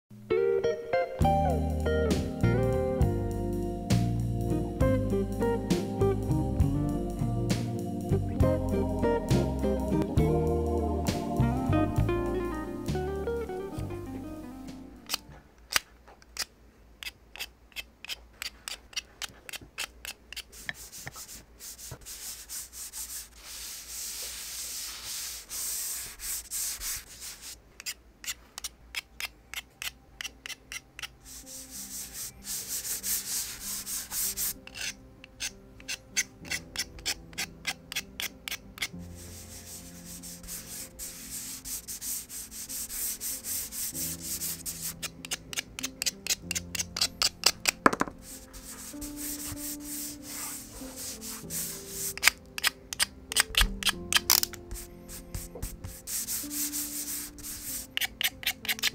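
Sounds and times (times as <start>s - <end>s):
pastel scratching on paper: 17.4s - 28.4s, 31.0s - 35.0s, 35.9s - 58.9s.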